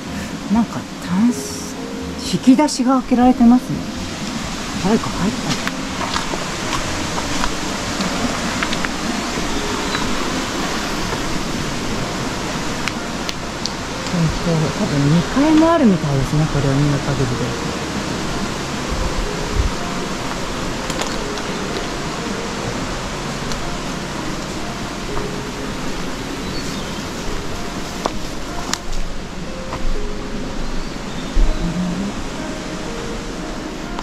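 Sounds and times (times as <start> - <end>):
stream rushing: 0.0 - 34.0.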